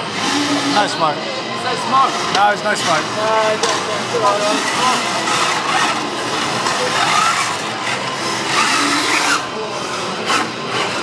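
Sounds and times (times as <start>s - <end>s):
steady background noise: 0.0s - 11.0s
electric robot motors whining: 1.9s - 11.0s.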